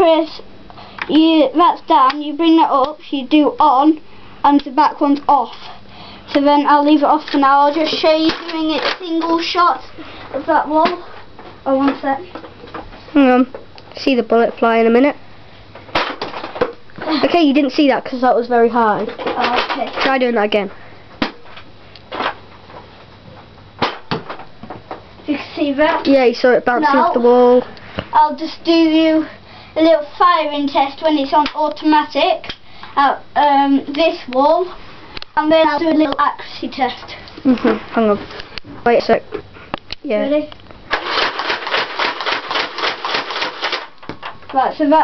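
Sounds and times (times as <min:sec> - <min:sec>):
toy blaster firing automatic clacks: 0:40.9 - 0:43.9.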